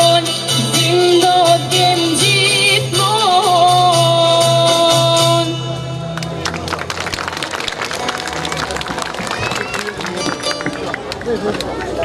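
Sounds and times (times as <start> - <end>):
crowd voices: 0.0 - 12.0
audience applause: 6.2 - 12.0.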